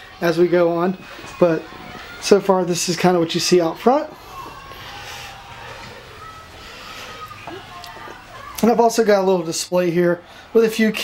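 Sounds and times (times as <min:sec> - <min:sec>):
low room background noise: 0:00.0 - 0:11.0.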